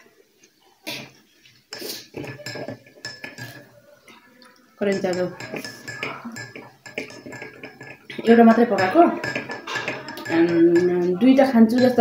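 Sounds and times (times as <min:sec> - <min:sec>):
metal fork scraping a metal plate: 0:05.1 - 0:12.0.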